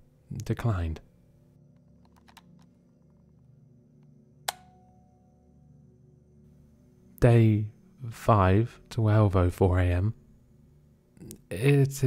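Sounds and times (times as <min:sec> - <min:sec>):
sharp click: 0:04.4 - 0:04.8.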